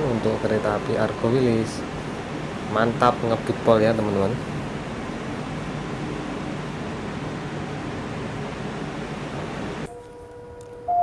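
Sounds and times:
train coaches rushing past: 0:00.0 - 0:06.8
level crossing warning tone: 0:00.0 - 0:11.0.

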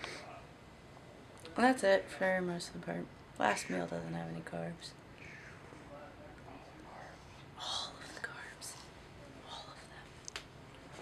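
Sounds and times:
person whispering: 0:06.9 - 0:10.2.

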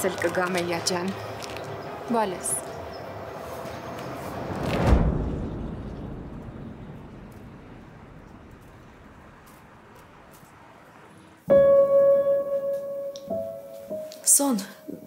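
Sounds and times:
long rumbling tail: 0:03.2 - 0:10.3
rising whoosh: 0:03.2 - 0:10.7
deep hit: 0:04.4 - 0:09.9.

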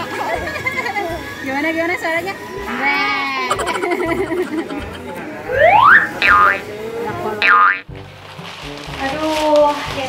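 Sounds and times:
indistinct voices: 0:02.5 - 0:07.9
cartoon rising whistle: 0:05.5 - 0:06.6.

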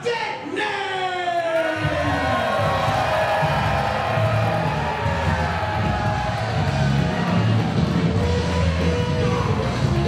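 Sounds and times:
bass-heavy music: 0:01.8 - 0:10.0.

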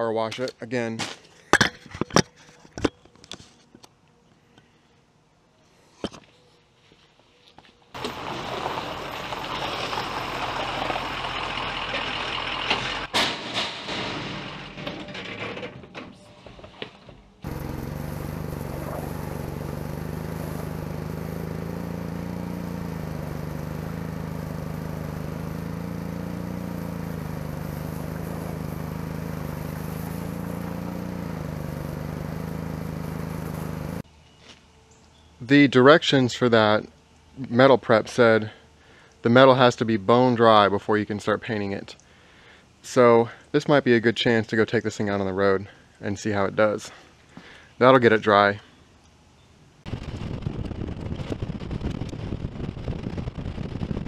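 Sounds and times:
pressure washer spraying: 0:17.5 - 0:34.0.

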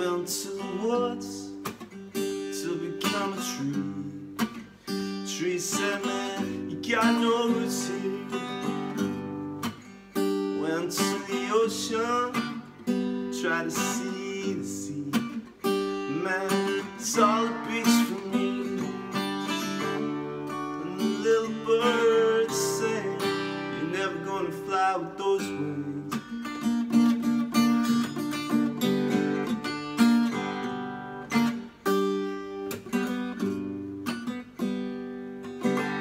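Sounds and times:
man singing: 0:00.0 - 0:01.7, 0:02.3 - 0:04.4, 0:05.0 - 0:09.3, 0:10.4 - 0:26.5
acoustic guitar strumming: 0:00.0 - 0:36.0.

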